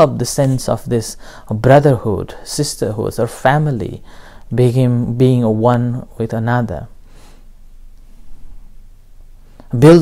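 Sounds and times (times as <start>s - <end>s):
faint hiss: 0.0s - 10.0s
soft intake of breath: 1.2s - 1.5s, 4.0s - 4.5s, 7.0s - 8.8s.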